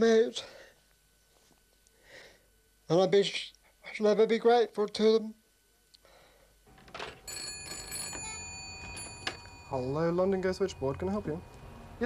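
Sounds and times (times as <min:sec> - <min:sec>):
telephone bell ringing: 0:07.2 - 0:11.5.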